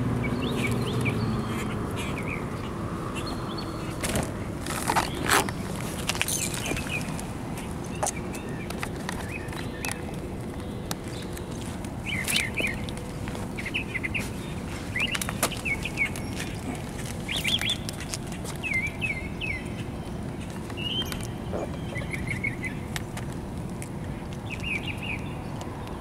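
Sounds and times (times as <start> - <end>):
bird chirping: 0.2 - 4.0, 4.7 - 23.0, 24.4 - 26.0.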